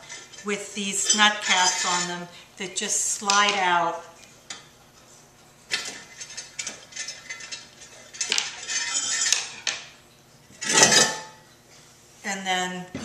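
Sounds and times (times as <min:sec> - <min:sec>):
ceramic pieces clinking and scraping: 0:01.0 - 0:02.2, 0:05.8 - 0:09.8.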